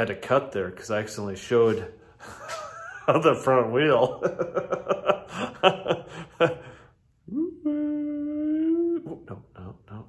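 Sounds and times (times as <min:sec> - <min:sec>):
man humming a held note: 0:07.2 - 0:10.0
short vocal sounds: 0:07.2 - 0:10.0.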